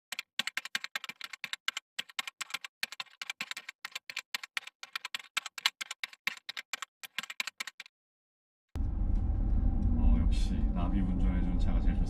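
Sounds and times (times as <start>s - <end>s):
keyboard typing clicks: 0.1s - 7.9s.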